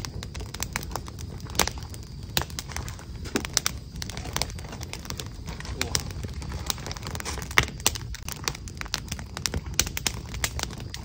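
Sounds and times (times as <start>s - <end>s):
wood fire crackling: 0.0s - 11.0s.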